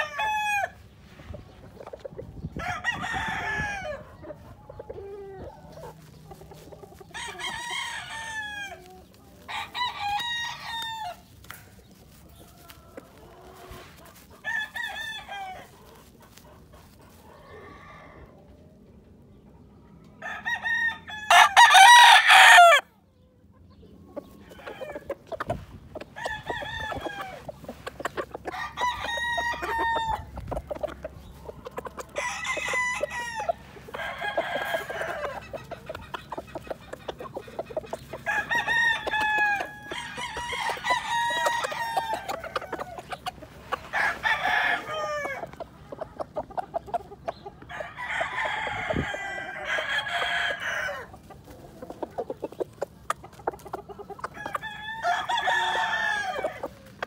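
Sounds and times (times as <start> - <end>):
roosters crowing: 0.0 - 1.3, 2.3 - 18.6, 20.1 - 23.0, 24.1 - 57.0.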